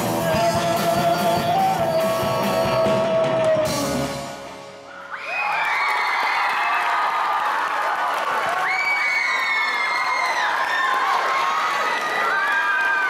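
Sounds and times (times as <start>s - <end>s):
rock song: 0.0s - 4.9s
audience cheering and screaming: 4.8s - 13.0s
high-pitched shrieks and whoops: 4.9s - 7.2s, 8.5s - 13.0s.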